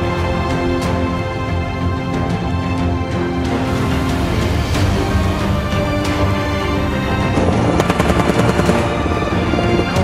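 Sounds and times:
theme music: 0.0s - 10.0s
rapid automatic gunfire: 7.8s - 9.1s.

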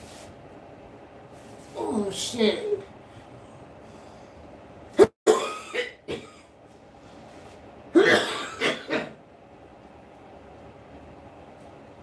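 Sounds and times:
man coughing hard: 5.0s - 6.5s, 7.9s - 9.2s.

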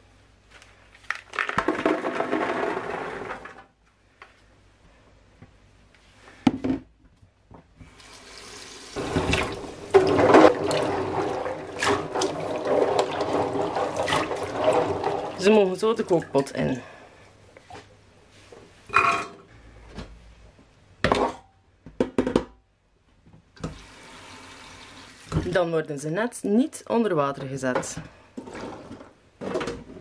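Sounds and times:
hands stirring in water: 9.0s - 16.8s.

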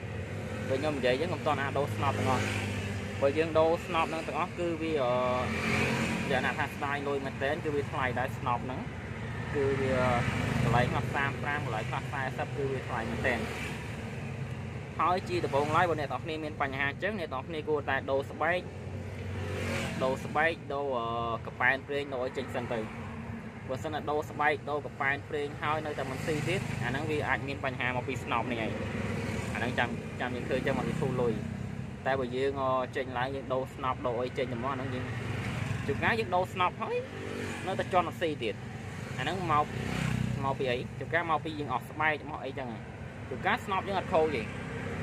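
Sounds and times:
man talking: 0.6s - 2.6s, 3.2s - 8.9s, 9.5s - 13.7s, 15.0s - 18.7s, 19.9s - 23.0s, 23.7s - 28.8s, 29.5s - 38.6s, 39.2s - 39.7s, 40.4s - 44.6s
person speaking: 3.2s - 13.7s, 19.9s - 23.0s, 23.7s - 39.8s, 40.4s - 44.6s.

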